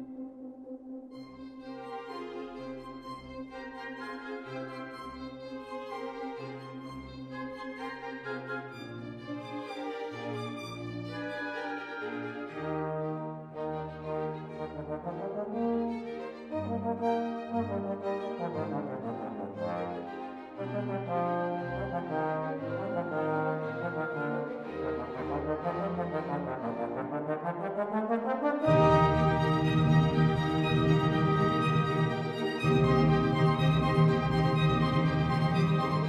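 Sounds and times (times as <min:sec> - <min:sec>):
orchestra playing: 0:01.7 - 0:36.0
solo trombone melody: 0:20.8 - 0:30.8.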